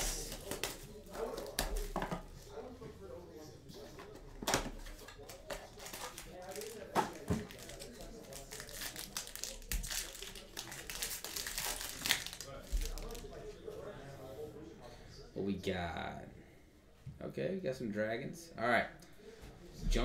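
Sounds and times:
plastic and foil crinkling: 0.0 - 2.2, 4.8 - 13.4.

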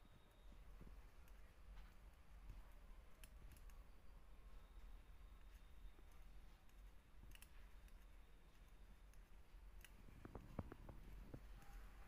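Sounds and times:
knitting needles clicking: 0.0 - 4.1, 5.4 - 12.0.

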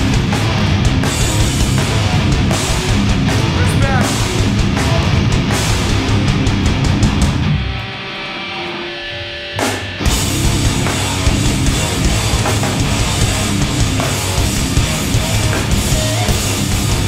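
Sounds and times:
distorted guitars ringing: 0.0 - 17.0
hardcore band playing live: 0.0 - 17.0
short guitar sweep: 0.0 - 17.0.

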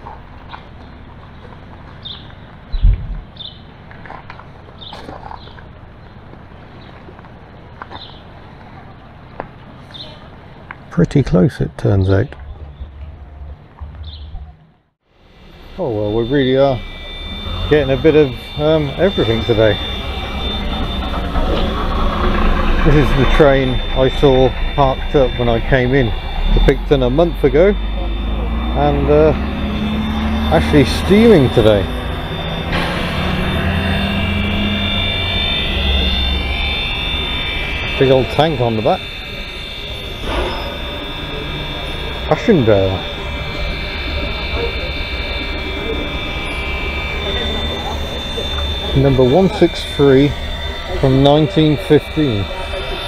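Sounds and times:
wind rumbling on microphone: 2.7 - 3.4
steam locomotive hissing: 15.3 - 53.0.

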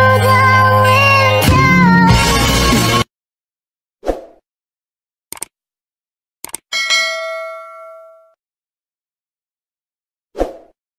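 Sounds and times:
notification bell ding: 6.7 - 8.4.

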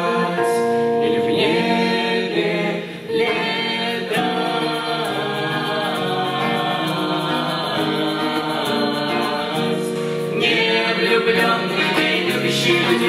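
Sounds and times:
vocal ensemble singing in harmony: 0.0 - 13.0.

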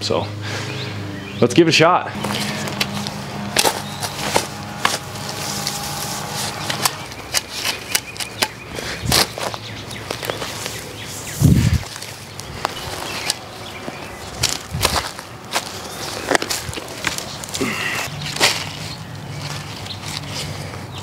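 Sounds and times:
spade crunching through mulch: 2.2 - 20.7.

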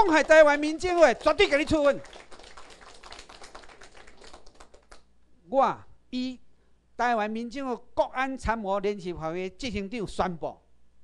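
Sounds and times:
light applause: 0.0 - 5.0.

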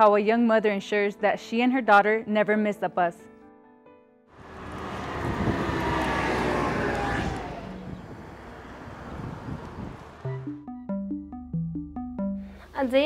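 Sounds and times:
vehicle passing on road: 4.4 - 10.6.

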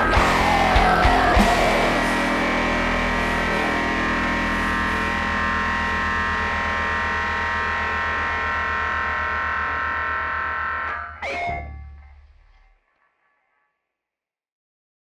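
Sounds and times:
rock band distorted chord: 0.0 - 12.7.

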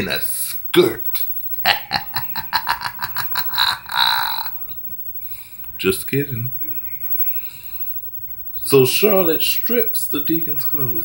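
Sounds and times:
man laughing hard: 1.6 - 4.7.

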